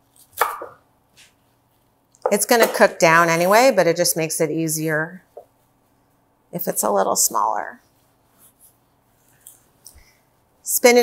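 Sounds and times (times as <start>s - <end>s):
knife chopping on wooden board: 0.4s - 0.8s.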